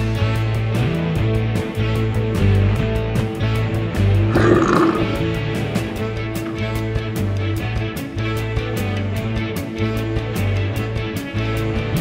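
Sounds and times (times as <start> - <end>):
rock backing music: 0.0 - 12.0
growling roar effect: 4.3 - 6.7.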